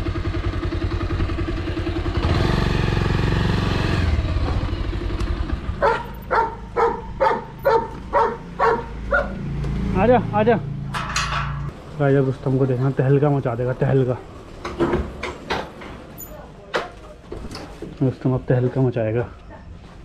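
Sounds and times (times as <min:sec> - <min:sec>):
motorcycle engine running: 0:00.0 - 0:11.8
dog barking: 0:05.8 - 0:09.4.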